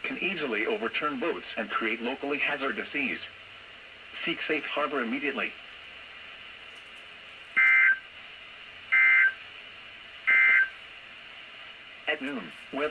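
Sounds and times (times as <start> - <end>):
faint radio hiss: 0.0 - 12.9
warbling two-tone digital data bursts: 7.6 - 8.0, 8.9 - 9.4, 10.3 - 10.8.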